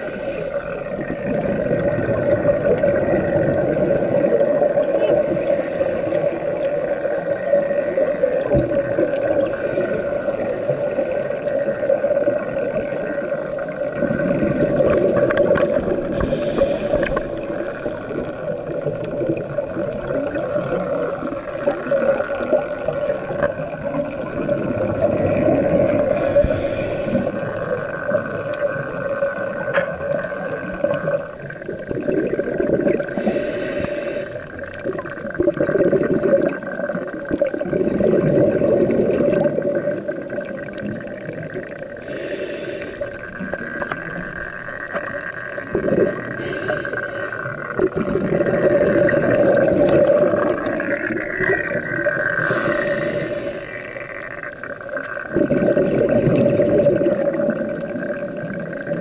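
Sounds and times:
regulator hiss: 0.0 - 1.1, 5.2 - 8.6, 16.0 - 18.9, 25.9 - 27.8, 33.1 - 34.7, 41.9 - 45.1, 46.2 - 47.8, 50.5 - 55.2
exhaled bubbles underwater: 0.0 - 59.0.

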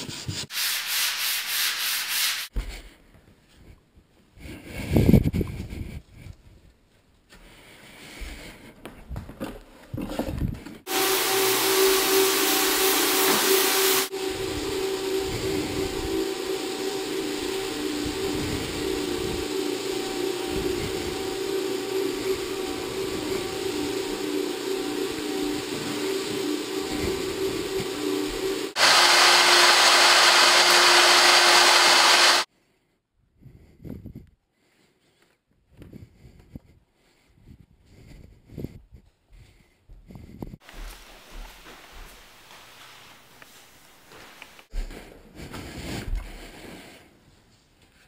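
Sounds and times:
floor buffer motor hum: 10.9 - 32.5.

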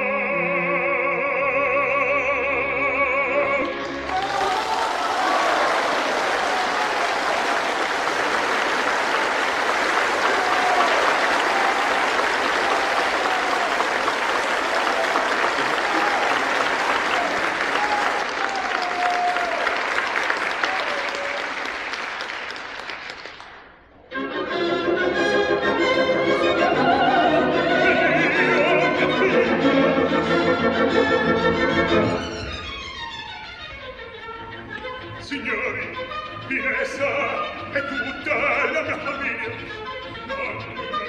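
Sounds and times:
audience applauding: 3.8 - 23.8.

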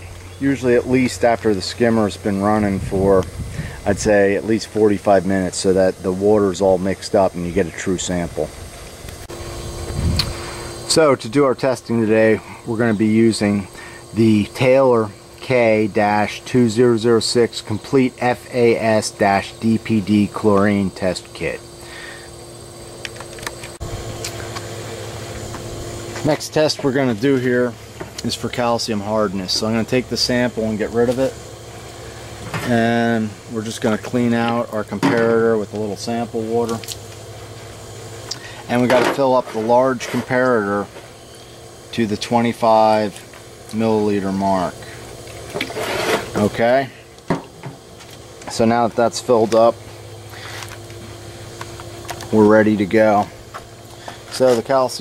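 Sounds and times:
low mechanical hum: 0.0 - 55.0.

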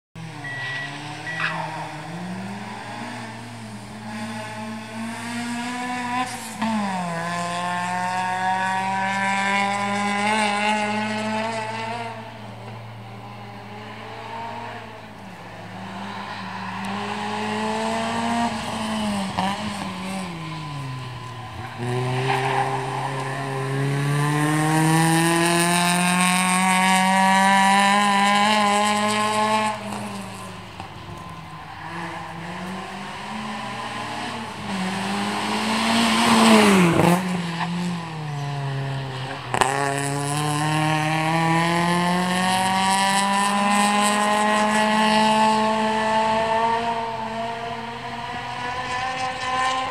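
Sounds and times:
car engine revving hard: 0.2 - 12.2, 15.6 - 30.6, 31.8 - 49.9.

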